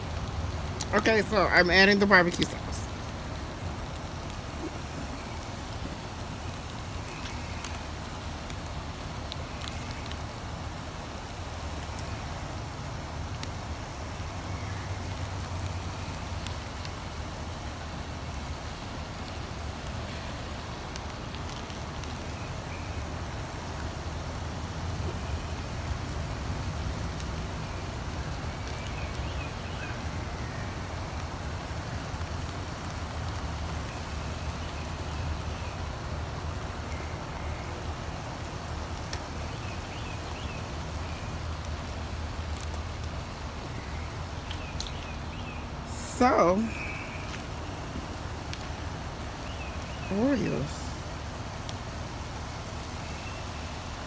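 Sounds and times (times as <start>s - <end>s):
faint clicks: 44.4s - 45.1s.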